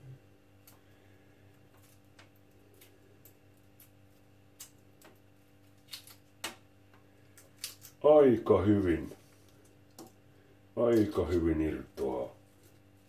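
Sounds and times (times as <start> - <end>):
steady low hum: 0.0 - 13.0
eggshell cracking and peeling: 1.5 - 8.1.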